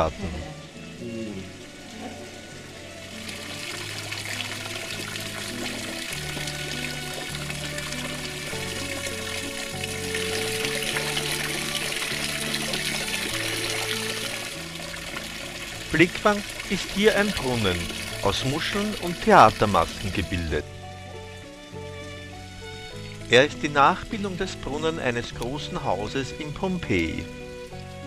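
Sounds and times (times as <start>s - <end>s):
calm background music: 0.0s - 28.0s
fountain water splashing into pond: 0.8s - 28.0s.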